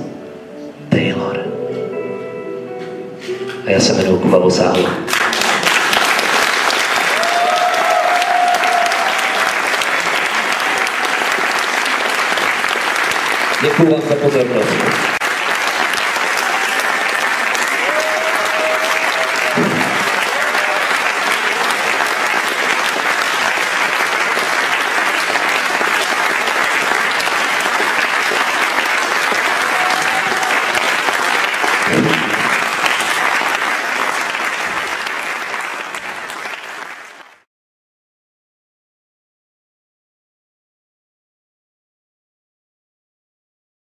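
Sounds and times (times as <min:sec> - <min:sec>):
audience applause: 0:04.7 - 0:37.5.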